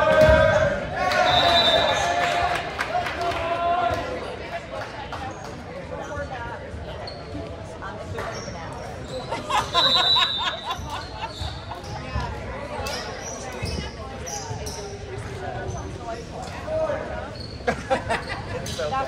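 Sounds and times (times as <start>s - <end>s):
voices echoing in gymnasium: 0.0s - 19.0s
shrill whistle blast: 1.2s - 2.1s.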